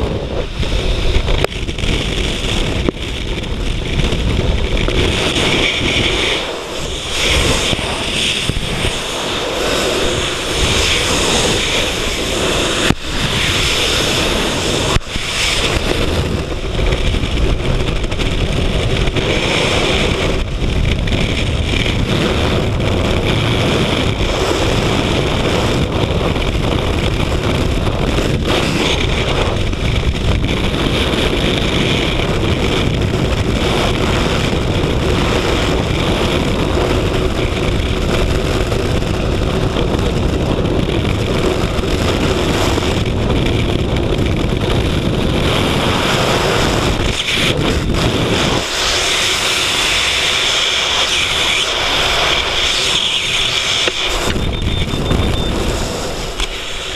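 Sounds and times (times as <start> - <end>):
wind buffeting microphone: 0.0 - 56.9.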